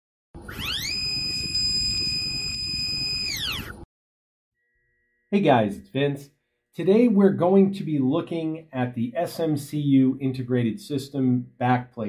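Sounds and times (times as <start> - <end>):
electronic tone sweeping: 0.4 - 3.9.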